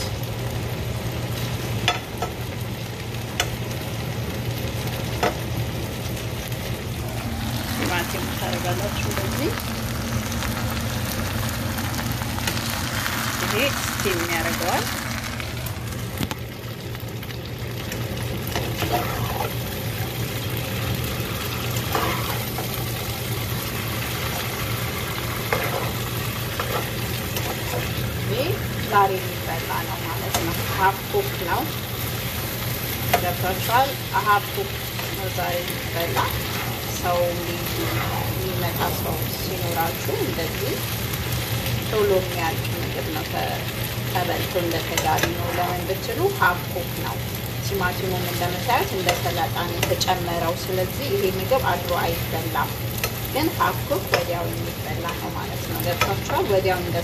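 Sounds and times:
vegetables sizzling in a pan: 0:00.0 - 0:57.0
spatula scraping a pan: 0:18.6 - 0:19.6, 0:21.8 - 0:22.8, 0:25.4 - 0:28.0, 0:37.6 - 0:38.4.

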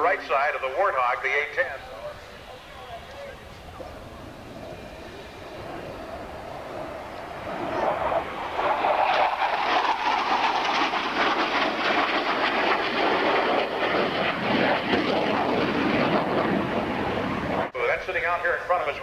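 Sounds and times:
loud crackling jet noise: 0:00.0 - 0:19.0.

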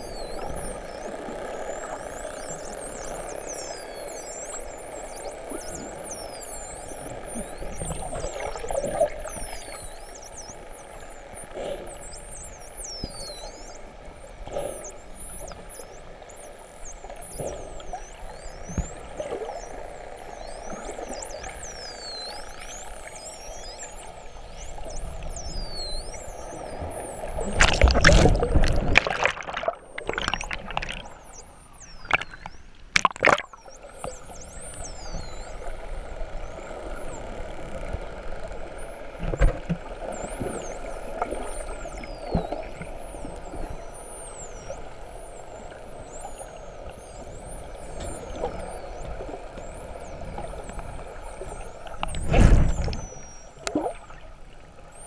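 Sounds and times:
dolphins whistling underwater: 0:00.0 - 0:55.0
underwater background noise: 0:00.0 - 0:55.0.

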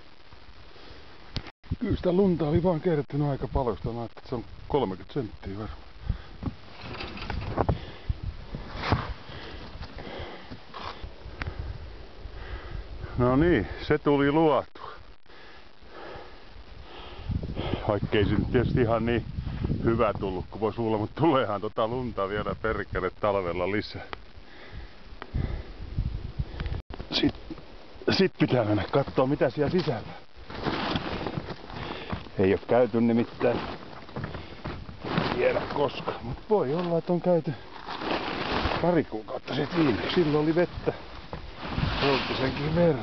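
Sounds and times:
microphone handling rumble: 0:01.3 - 0:13.7, 0:16.6 - 0:43.0
jacket rustling: 0:29.9 - 0:32.4, 0:37.7 - 0:43.0
shovel scraping through snow: 0:35.0 - 0:35.6, 0:37.8 - 0:40.7, 0:41.5 - 0:43.0.

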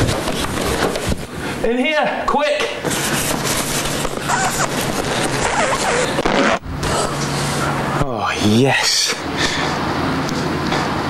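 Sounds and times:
low steady hum: 0:04.0 - 0:10.7
vinyl squeaks: 0:04.2 - 0:06.6.

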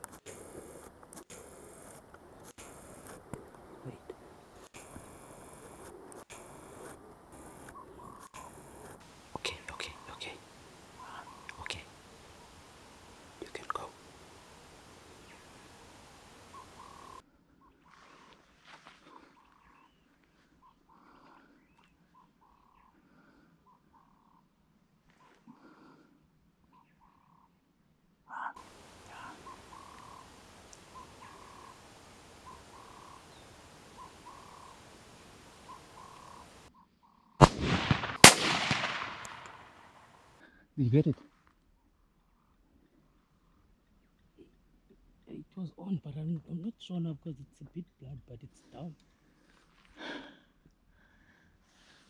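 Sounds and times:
faint bird calls: 0:00.4 - 0:26.0, 0:26.6 - 0:27.6, 0:28.3 - 0:37.5
low background hiss: 0:08.5 - 0:17.2, 0:28.0 - 0:36.7
gunshot echo: 0:37.4 - 0:40.1
rifle shots: 0:37.4 - 0:40.1.

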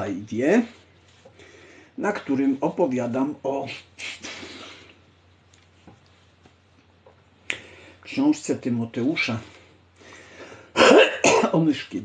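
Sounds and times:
man speaking: 0:00.0 - 0:00.8, 0:02.0 - 0:04.3, 0:08.0 - 0:09.6, 0:11.4 - 0:12.0
man clearing his throat: 0:10.8 - 0:11.6.

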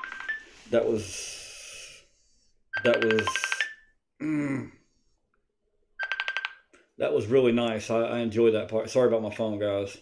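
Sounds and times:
phone alert beep: 0:00.0 - 0:00.6, 0:02.8 - 0:03.9.

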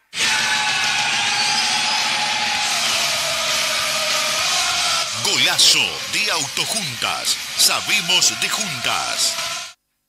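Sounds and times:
motor running: 0:00.7 - 0:09.7.

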